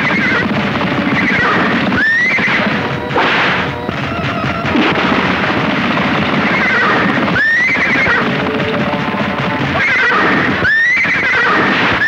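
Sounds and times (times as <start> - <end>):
horse whinnying: 0.0 - 5.4, 6.1 - 12.0
film background music: 0.0 - 12.0.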